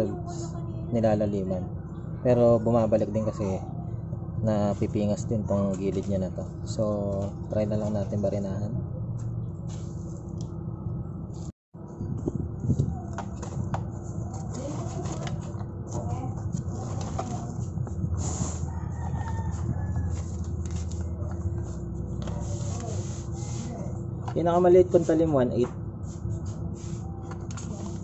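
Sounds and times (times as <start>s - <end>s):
steady low hum: 0.0s - 28.0s
rooster crowing: 18.6s - 20.6s.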